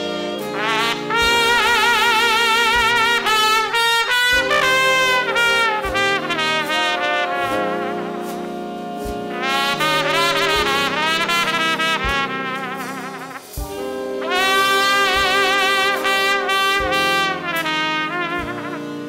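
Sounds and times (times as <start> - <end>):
saxophone and trombone chords: 0.0 - 19.0
solo trumpet with vibrato: 0.0 - 19.0.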